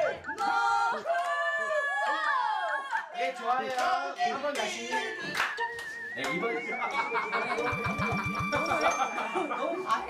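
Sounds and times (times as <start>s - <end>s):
people's voices: 0.0s - 10.0s
high wavering whistle-like tone: 5.0s - 9.3s.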